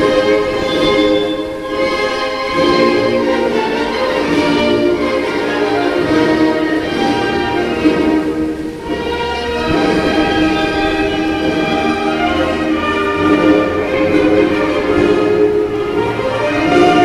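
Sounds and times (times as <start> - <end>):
orchestral bowed strings: 0.0 - 17.0.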